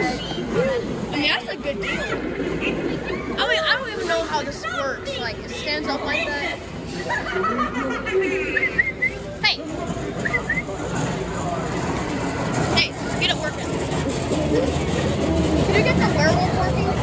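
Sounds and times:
indistinct voices: 0:00.0 - 0:17.0.

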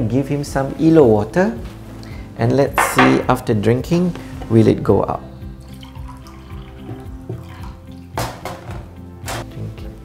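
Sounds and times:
background music with held notes: 0:00.0 - 0:10.0
water pouring into a glass: 0:05.4 - 0:08.2.

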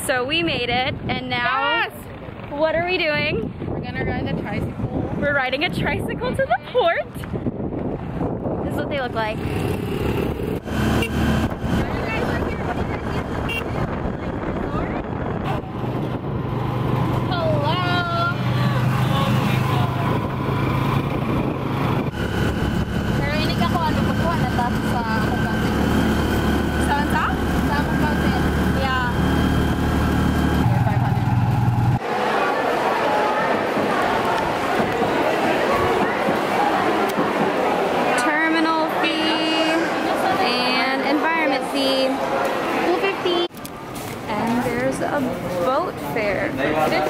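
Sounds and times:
motorcycle engine droning: 0:08.9 - 0:32.0.

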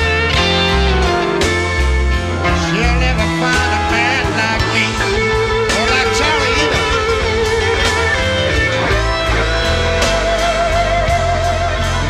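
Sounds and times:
electric blues band playing: 0:00.0 - 0:12.0
lead guitar with bent notes: 0:00.0 - 0:12.0.

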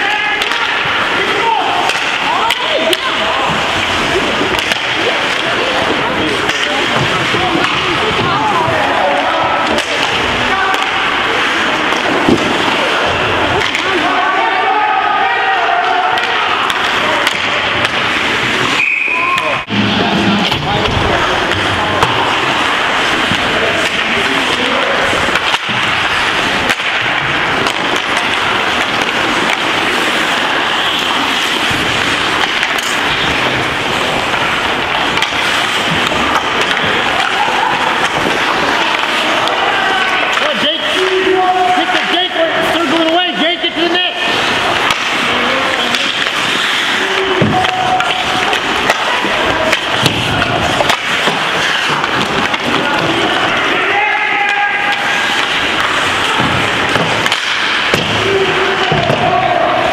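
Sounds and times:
skates scraping ice: 0:00.0 - 0:59.9
spectators' voices: 0:00.0 - 0:59.9
sticks and puck clacking: 0:00.0 - 0:59.9.

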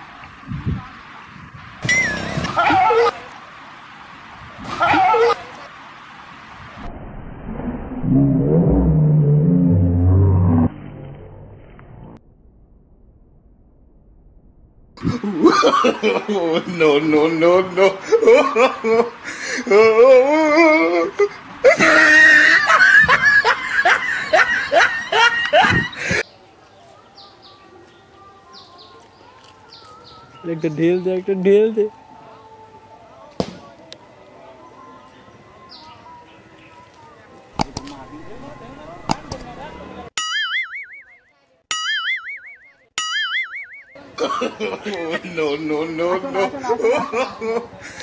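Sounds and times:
dog growling low: 0:08.0 - 0:10.8
person laughing hard: 0:15.0 - 0:16.8, 0:17.8 - 0:26.2, 0:46.2 - 0:48.0.

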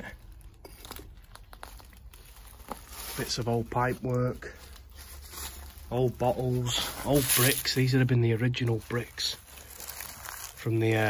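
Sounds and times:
dry leaves crinkling: 0:00.0 - 0:11.0.

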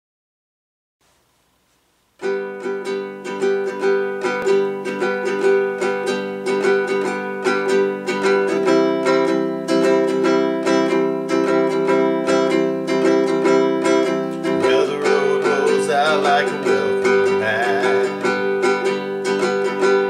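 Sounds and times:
ukulele strumming: 0:01.2 - 0:20.0.

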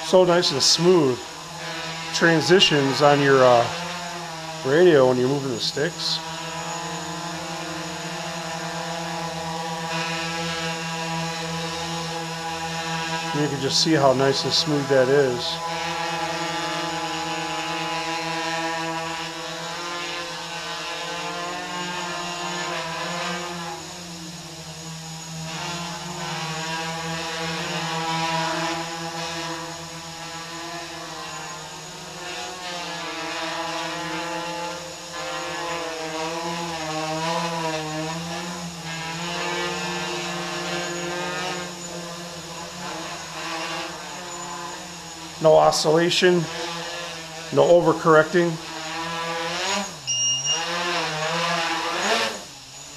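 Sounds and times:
quadcopter motors buzzing: 0:00.0 - 0:52.9.

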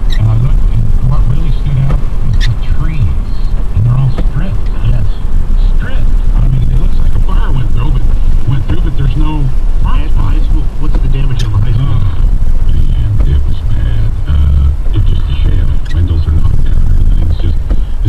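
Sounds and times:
car road and engine rumble: 0:00.0 - 0:18.0
indistinct voices talking: 0:00.0 - 0:18.0.

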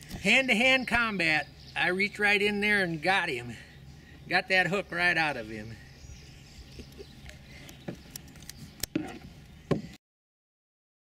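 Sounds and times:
faint outdoor background: 0:00.0 - 0:10.0.

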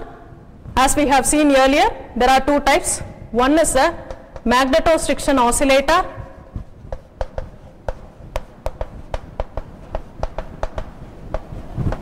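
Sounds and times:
chalk tapping on a blackboard: 0:06.6 - 0:12.0.

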